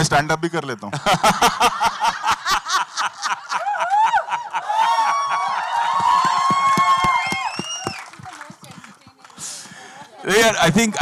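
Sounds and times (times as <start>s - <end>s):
group of people laughing: 0.9s - 6.0s.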